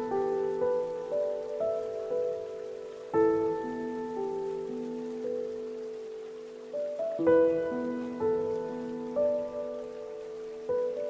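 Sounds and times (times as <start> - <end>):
faint stream water rushing: 0.0 - 11.0
slow solo piano melody: 0.0 - 11.0.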